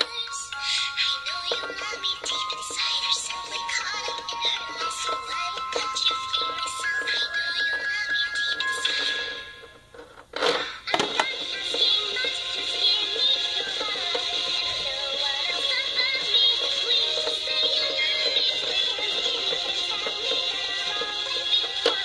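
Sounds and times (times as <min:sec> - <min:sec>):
song with singing voice: 0:00.0 - 0:09.8, 0:10.4 - 0:22.0.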